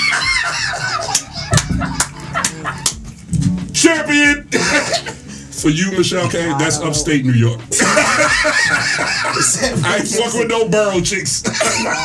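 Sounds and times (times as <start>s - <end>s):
men laughing and whooping: 0.0s - 3.0s, 7.7s - 10.1s, 11.4s - 12.0s
sharp slaps or claps: 1.1s - 3.7s.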